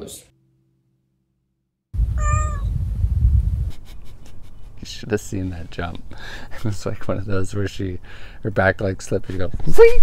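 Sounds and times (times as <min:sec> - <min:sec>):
loud low rumble: 0:02.0 - 0:03.9
cat meowing: 0:02.1 - 0:02.7.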